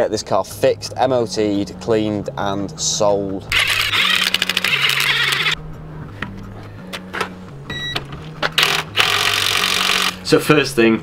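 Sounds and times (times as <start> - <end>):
background music with bass: 0.0 - 11.0.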